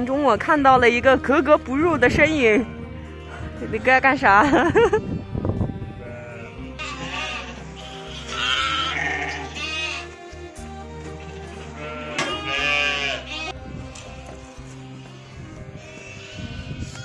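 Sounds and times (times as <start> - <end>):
background music: 0.0 - 17.0
person laughing: 4.3 - 5.1
lamb bleating: 6.0 - 10.2, 11.2 - 14.2, 15.0 - 17.0.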